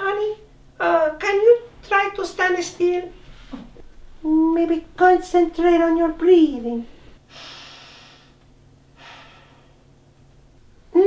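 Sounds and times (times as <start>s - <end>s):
person breathing deeply: 6.9s - 9.9s.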